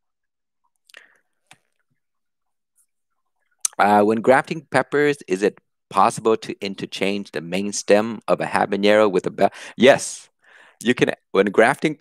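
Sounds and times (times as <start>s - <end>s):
man speaking: 3.7s - 10.2s, 10.8s - 12.0s.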